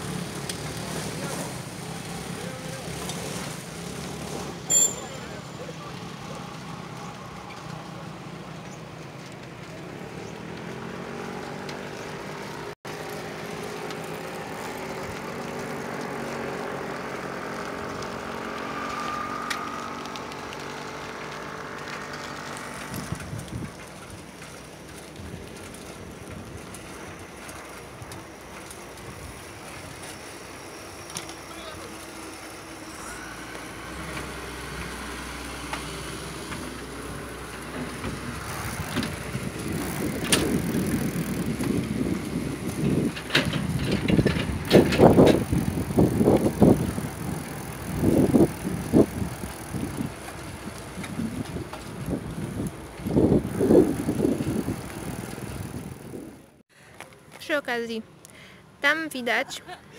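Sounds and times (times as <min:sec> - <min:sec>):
bicycle riding noise: 0:00.0 - 0:59.9.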